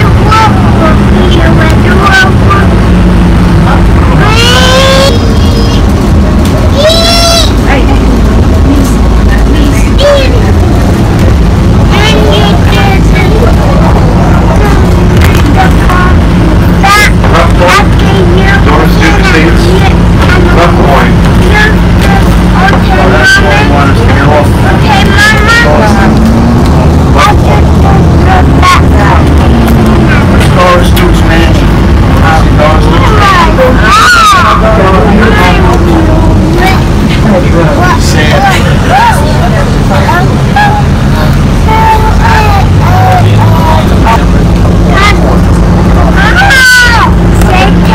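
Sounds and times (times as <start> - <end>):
bus engine drone: 0.0 - 47.9
passengers talking: 0.0 - 47.9
road rumble: 0.0 - 47.9.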